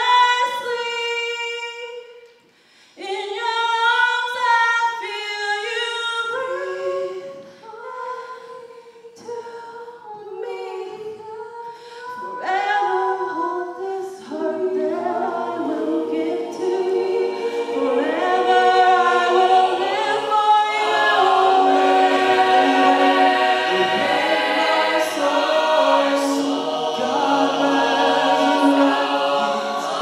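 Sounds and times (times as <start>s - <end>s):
a cappella group singing: 3.0s - 30.0s
women singing lead: 3.0s - 30.0s.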